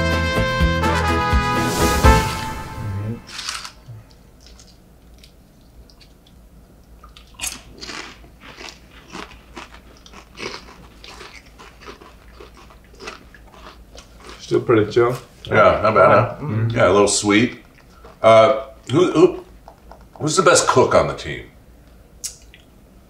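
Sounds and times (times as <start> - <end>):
brass music sting: 0.0 - 3.3
chips being crunched: 7.4 - 14.5.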